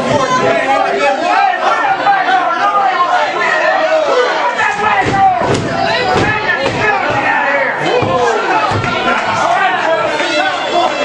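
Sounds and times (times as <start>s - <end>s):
people talking and shouting: 0.0s - 11.0s.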